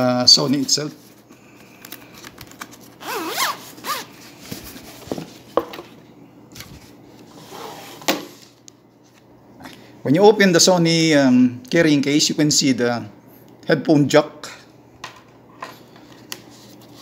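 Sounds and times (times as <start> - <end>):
zipper being pulled open: 3.0 - 4.2, 7.4 - 8.1.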